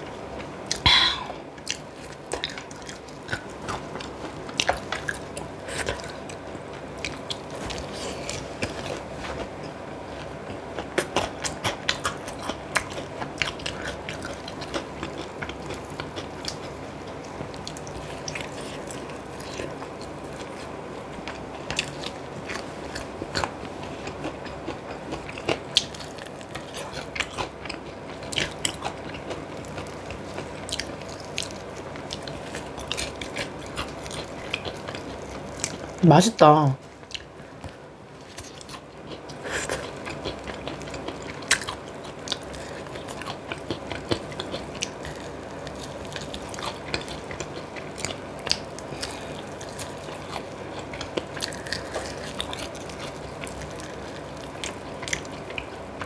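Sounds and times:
biting and chewing: 0.0 - 36.0, 36.9 - 56.0.

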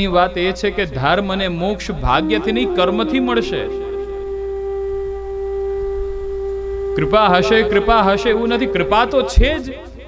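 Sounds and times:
steady drone: 2.1 - 10.0.

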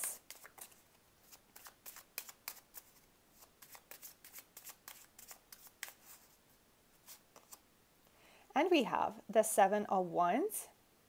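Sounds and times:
cards shuffled by hand: 0.0 - 6.4, 7.0 - 7.6.

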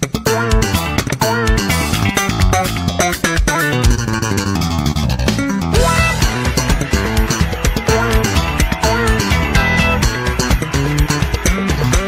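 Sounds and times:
bass and guitar music with beat: 0.0 - 12.0.

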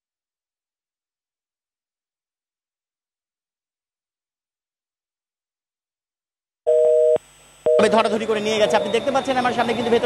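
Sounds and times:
street noise: 7.7 - 10.0
voices: 7.8 - 10.0.

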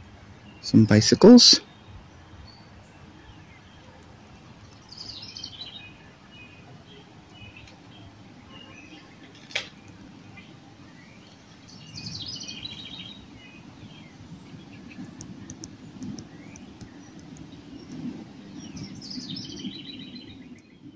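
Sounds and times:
songbirds chirping and singing: 0.2 - 20.9.

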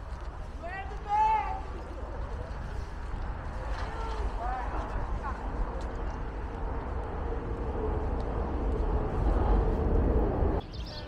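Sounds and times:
traffic rumble: 0.0 - 11.0
vehicle whine: 2.9 - 10.7.

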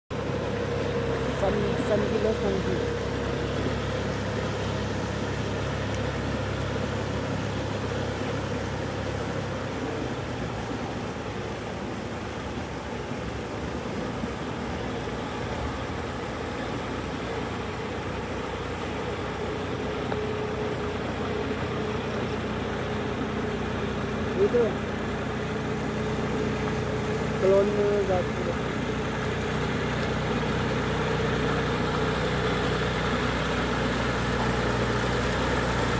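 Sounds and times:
tractor diesel engine running: 0.1 - 35.9.

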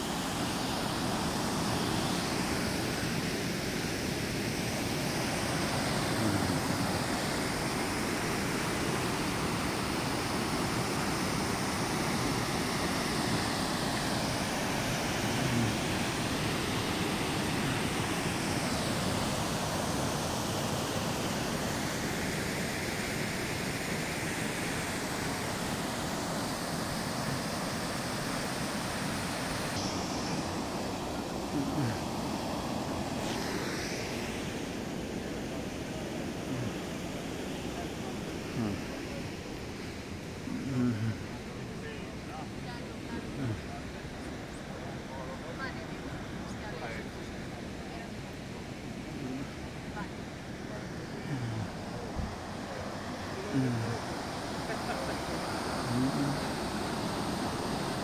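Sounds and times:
river rushing over weir: 0.0 - 58.0.

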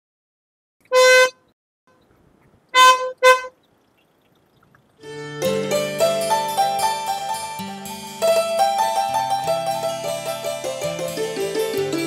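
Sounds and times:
car horn honks: 0.9 - 1.5, 2.7 - 3.6.

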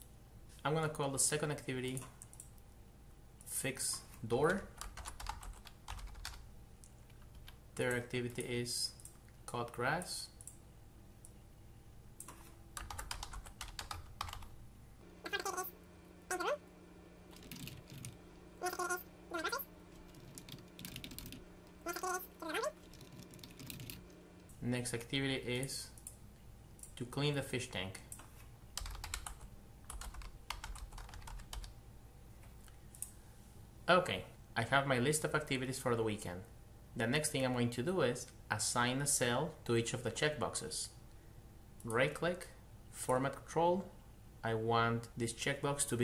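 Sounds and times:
computer keyboard typing: 4.5 - 6.4, 12.2 - 14.5, 17.3 - 24.1, 28.1 - 31.7.

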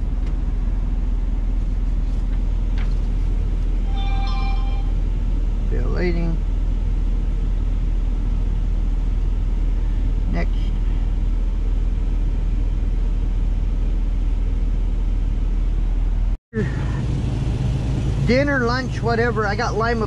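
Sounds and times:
diesel truck engine idling: 0.0 - 20.0.

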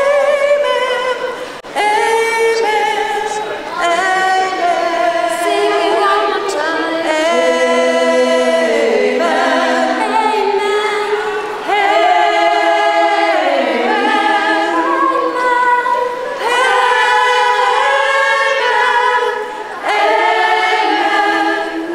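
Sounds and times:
choir singing a cappella: 0.0 - 21.9.

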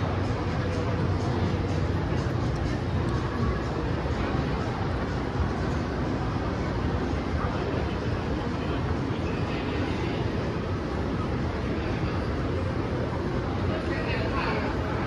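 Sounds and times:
faint distant voices: 0.0 - 15.0
low rumble of mall background: 0.0 - 15.0.

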